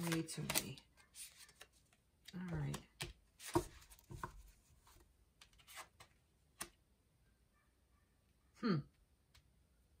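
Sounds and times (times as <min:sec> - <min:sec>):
cards tapping and rustling: 0:00.0 - 0:06.8.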